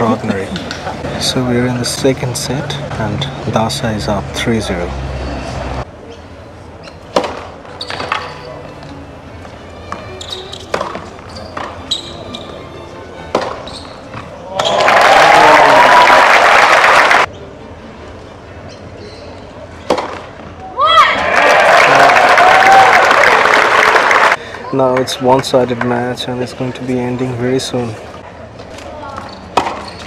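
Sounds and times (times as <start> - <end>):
tennis ball bounces: 7.1 - 8.3, 13.3 - 14.7, 19.8 - 20.3, 29.5 - 30.0
tennis racquet strikes: 7.1 - 8.3, 10.6 - 11.8, 13.3 - 14.7, 19.8 - 20.3, 29.5 - 30.0
crowd applauding and cheering: 14.5 - 17.3, 21.2 - 25.0.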